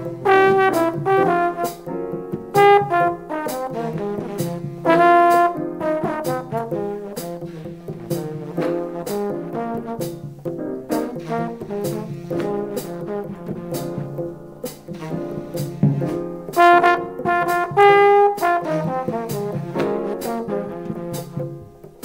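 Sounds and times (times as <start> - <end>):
horn melody: 0.0 - 22.0
walking bass: 0.0 - 22.0.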